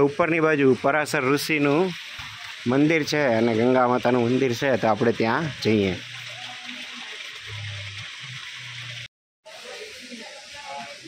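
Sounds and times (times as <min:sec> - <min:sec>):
flowing water rushing: 0:00.0 - 0:11.0.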